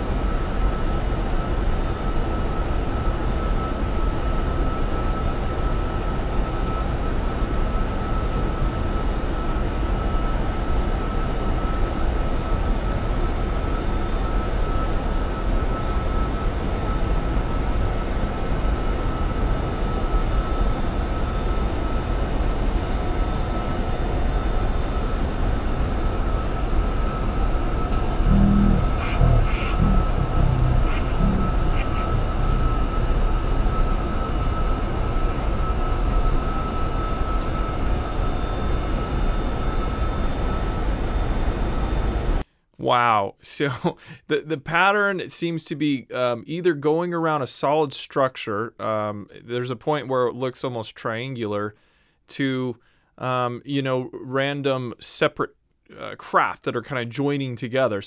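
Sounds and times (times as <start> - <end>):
thin high whine: 0.0 - 51.8
jet cockpit noise: 0.0 - 58.0
muffled voice: 28.2 - 32.8, 42.8 - 45.3.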